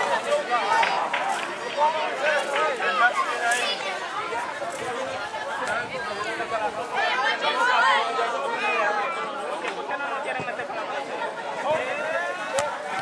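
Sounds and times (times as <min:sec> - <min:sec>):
people chattering and calling out: 0:00.0 - 0:13.0.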